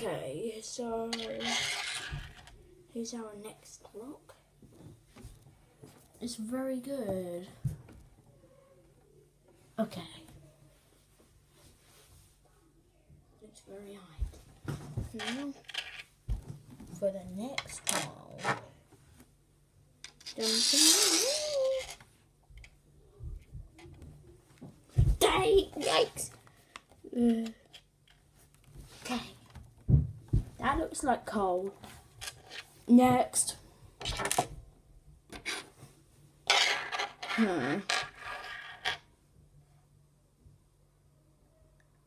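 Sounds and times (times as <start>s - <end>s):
rock scraping on hard surface: 1.1s - 2.5s, 36.5s - 39.0s.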